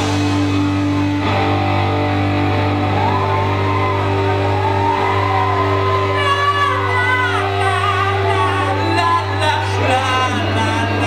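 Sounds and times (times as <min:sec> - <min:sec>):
electric guitar chords: 0:00.0 - 0:11.0
rock band playing: 0:00.0 - 0:11.0
person singing: 0:05.7 - 0:11.0.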